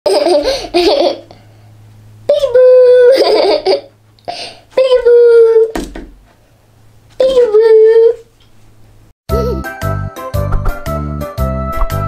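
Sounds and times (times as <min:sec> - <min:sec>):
young child laughing: 0:00.1 - 0:01.4, 0:02.3 - 0:04.4, 0:09.3 - 0:09.7.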